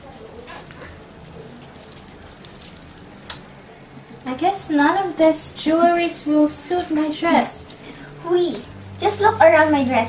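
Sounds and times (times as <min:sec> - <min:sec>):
bead necklace clinking: 0:00.4 - 0:03.4.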